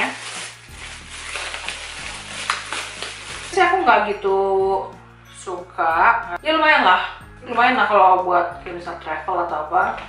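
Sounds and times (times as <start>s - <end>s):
plastic bag crinkling: 0.0s - 4.2s.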